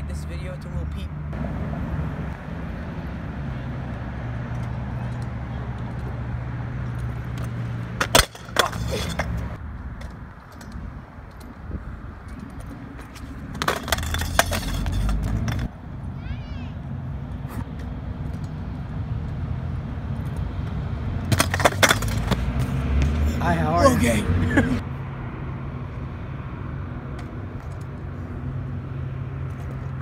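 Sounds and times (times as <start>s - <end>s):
scooter wheels rolling on concrete: 2.3s - 24.8s
scooter clattering on ground: 6.9s - 11.6s, 12.2s - 15.7s, 21.3s - 22.6s.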